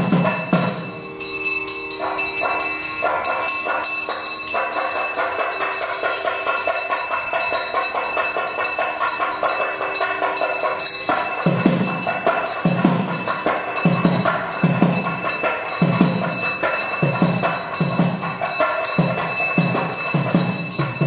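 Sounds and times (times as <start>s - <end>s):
rapid metallic bell ringing: 0.0s - 21.0s.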